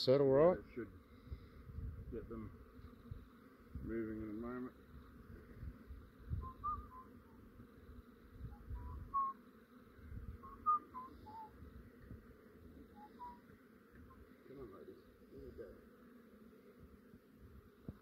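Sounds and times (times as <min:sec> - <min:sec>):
bees buzzing: 0:00.0 - 0:18.0
high whistle-like chirps: 0:06.3 - 0:07.2, 0:08.6 - 0:09.4, 0:10.4 - 0:11.6, 0:13.0 - 0:13.4.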